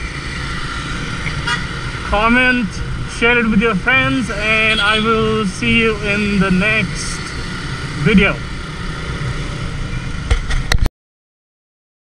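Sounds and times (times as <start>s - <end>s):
motorcycle engine and road rumble: 0.0s - 10.9s.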